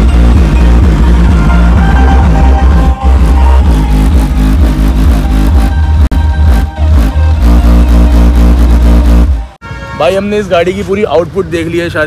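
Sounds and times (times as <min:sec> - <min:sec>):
electronic dance music heavy bass: 0:00.0 - 0:09.6.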